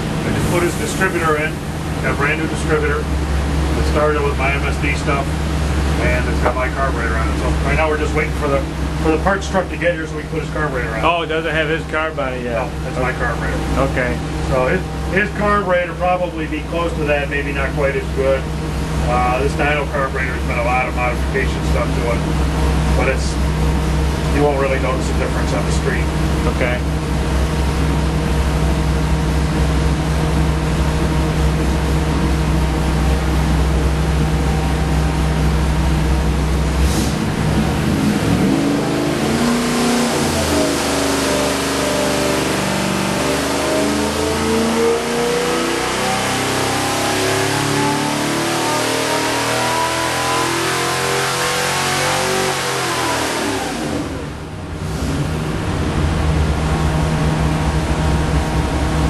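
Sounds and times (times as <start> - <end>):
engine idling and revving: 0.0 - 59.0.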